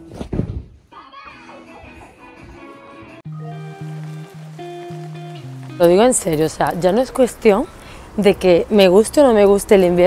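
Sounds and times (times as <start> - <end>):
soft background music: 1.6 - 10.0.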